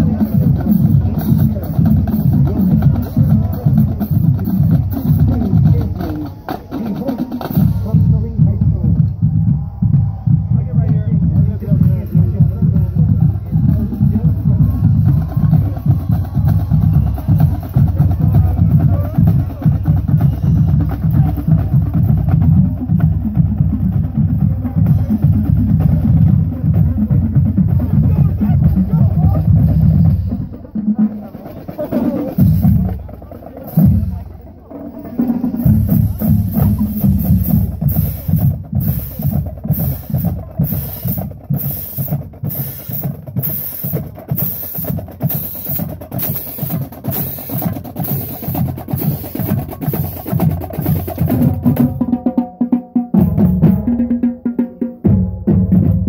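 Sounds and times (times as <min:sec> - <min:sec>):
marching drumline playing: 0:00.0 - 0:56.0.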